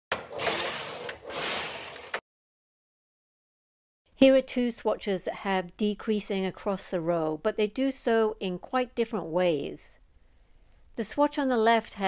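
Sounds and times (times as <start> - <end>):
knitting machine carriage rasping: 0.1 - 2.2.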